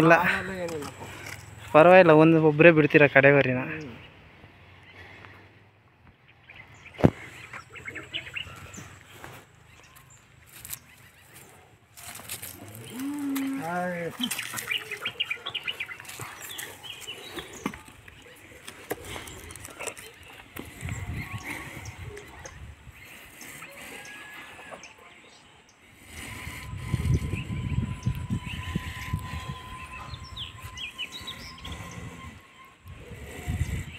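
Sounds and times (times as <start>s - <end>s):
small birds chirping: 0.0s - 33.9s
low rumbling noise: 25.7s - 33.9s.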